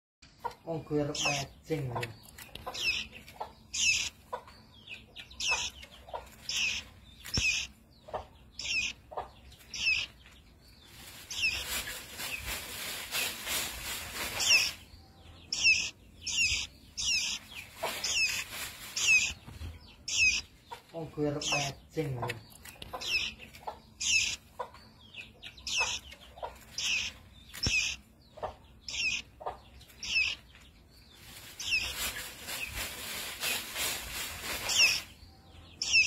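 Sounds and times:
fledgling bird chirping: 0.2s - 36.0s.

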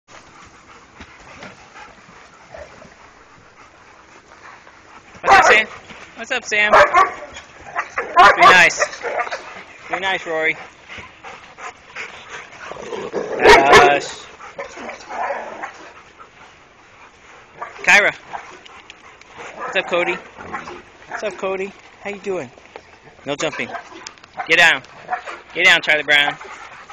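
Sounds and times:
low noise of dogs: 0.1s - 26.9s
dogs barking: 5.2s - 5.7s, 6.6s - 10.1s, 12.6s - 16.0s, 17.5s - 18.6s, 19.4s - 21.4s, 23.4s - 25.6s.

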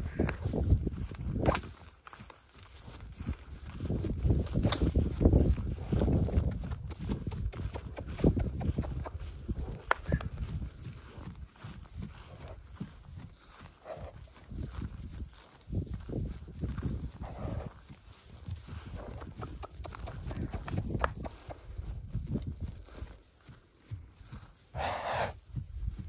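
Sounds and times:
horse hoofbeats on dry grass: 0.0s - 26.0s.

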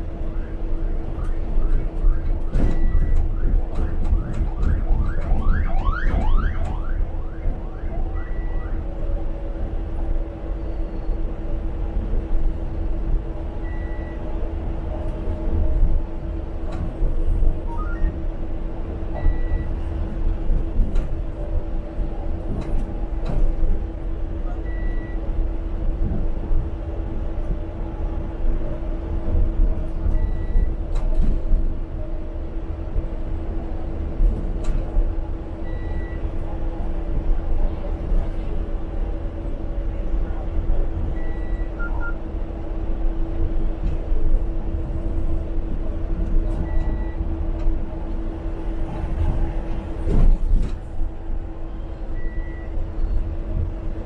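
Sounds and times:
bus engine and road rumble: 0.0s - 54.0s.

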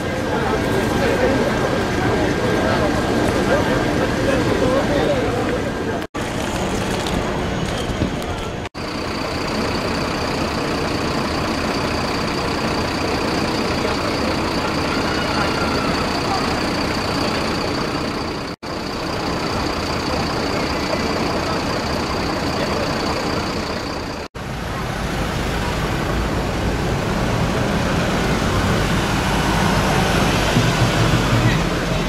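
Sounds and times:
people talking: 0.0s - 6.1s, 12.7s - 18.5s, 19.2s - 32.0s
vehicles: 0.0s - 32.0s.

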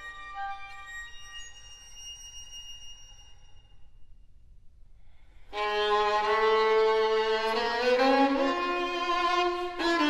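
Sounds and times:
high violin note: 5.6s - 10.0s.

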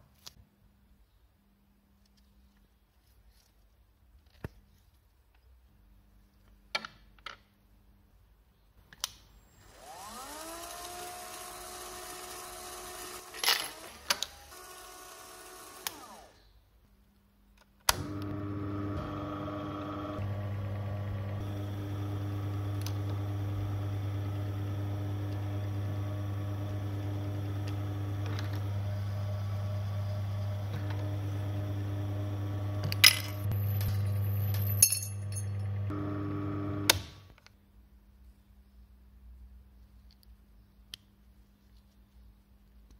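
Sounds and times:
small motor whining: 9.5s - 16.5s, 18.0s - 36.9s
electric motor humming: 9.6s - 16.4s, 18.0s - 37.0s.

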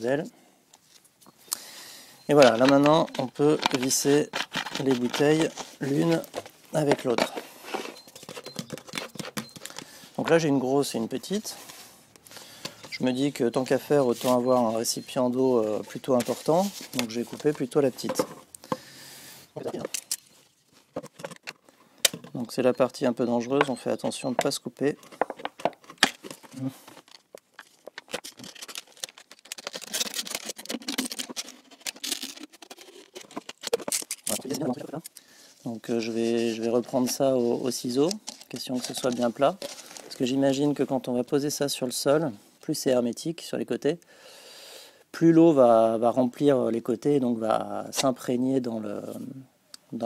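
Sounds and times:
plastic squeaks: 2.2s - 10.3s, 12.5s - 18.8s, 19.6s - 35.2s, 35.8s - 40.2s
plastic bottle clicking and crackling: 2.3s - 7.4s, 8.2s - 10.0s, 20.9s - 22.5s, 24.4s - 35.2s, 38.0s - 40.2s.

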